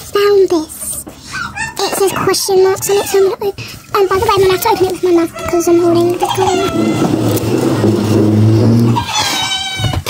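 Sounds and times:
girl squealing: 1.3s - 7.2s.

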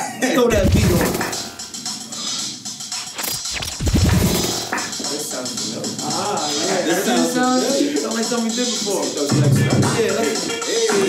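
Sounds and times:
hip-hop beat: 0.3s - 11.0s
record scratching: 0.5s - 1.5s, 3.0s - 4.9s.

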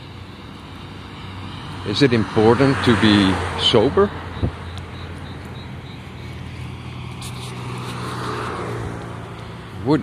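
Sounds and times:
motor vehicle passing by: 0.0s - 10.0s.

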